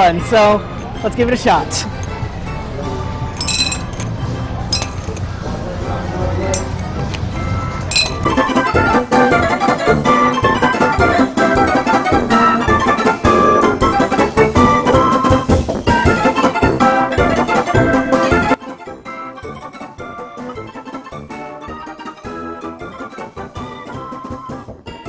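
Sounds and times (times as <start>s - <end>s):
keyboard music: 0.0s - 25.0s
plastic rings clinking on bottles: 3.3s - 5.3s, 6.5s - 6.8s, 7.9s - 8.3s.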